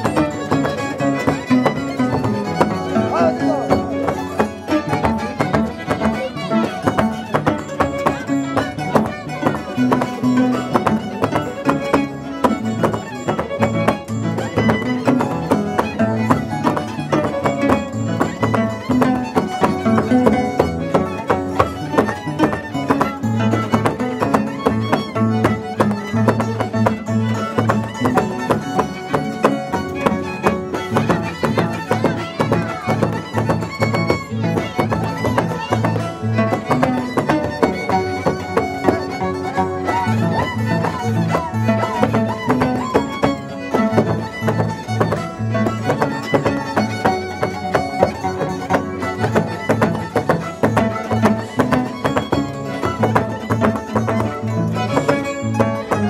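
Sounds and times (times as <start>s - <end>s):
violin dance music: 0.0s - 56.0s.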